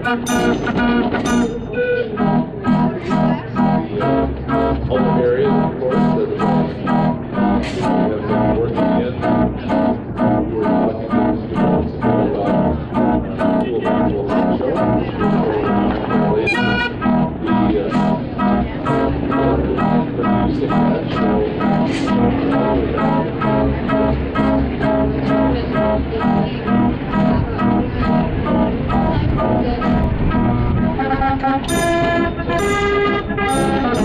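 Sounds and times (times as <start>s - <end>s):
street organ playing a tune: 0.0s - 34.0s.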